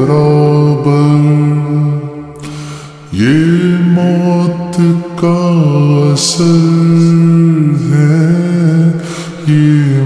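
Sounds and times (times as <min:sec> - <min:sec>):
person singing with reverb: 0:00.0 - 0:10.0.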